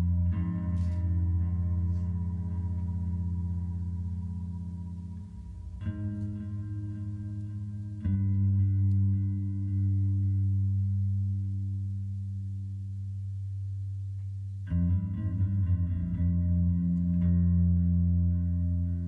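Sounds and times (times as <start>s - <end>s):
low chord struck: 0.0s - 12.2s.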